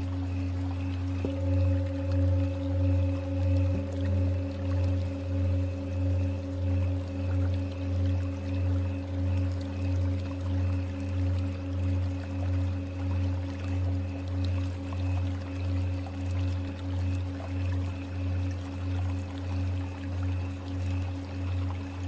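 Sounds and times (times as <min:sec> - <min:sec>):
singing bowl struck: 0:00.0 - 0:13.5
singing bowls droning: 0:00.0 - 0:22.0.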